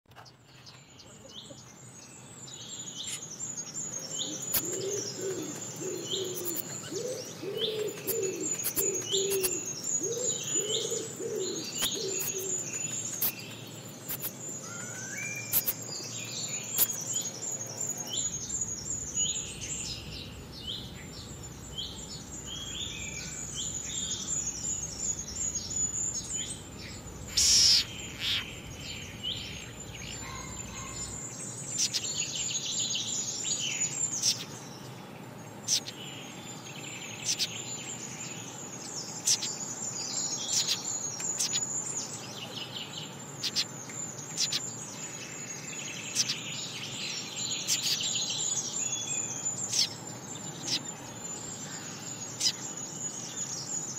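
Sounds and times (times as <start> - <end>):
small birds chirping: 0.0 - 53.9
lower bird calls: 0.1 - 34.9, 35.6 - 53.9.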